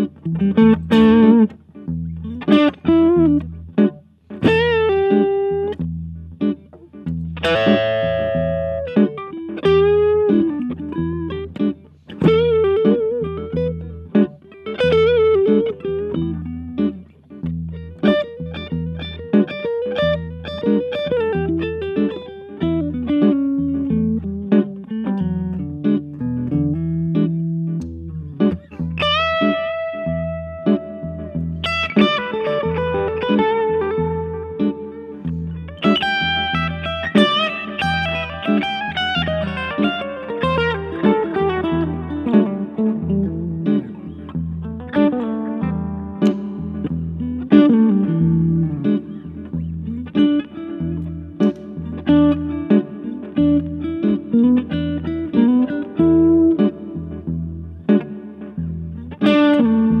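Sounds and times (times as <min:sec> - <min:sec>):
electric guitar picking lines: 0:00.0 - 1:00.0
repeating low backing part: 0:00.0 - 1:00.0.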